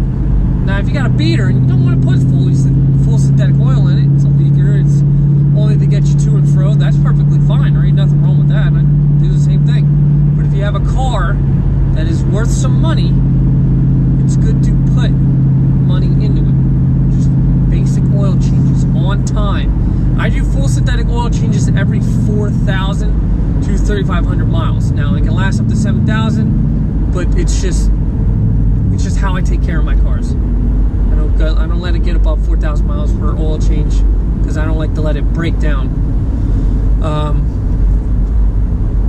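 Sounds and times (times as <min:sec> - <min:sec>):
car engine drone: 0:00.0 - 0:39.0
road noise inside car: 0:00.0 - 0:39.0
man talking: 0:00.7 - 0:11.4, 0:12.0 - 0:13.2, 0:14.2 - 0:15.2, 0:15.8 - 0:26.5, 0:27.1 - 0:27.9, 0:28.8 - 0:30.4, 0:31.1 - 0:35.9, 0:37.0 - 0:37.5.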